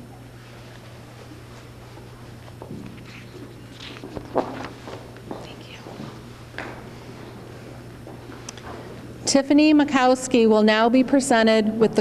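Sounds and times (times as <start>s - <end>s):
steady low hum: 0.0s - 12.0s
people whispering: 5.4s - 6.0s.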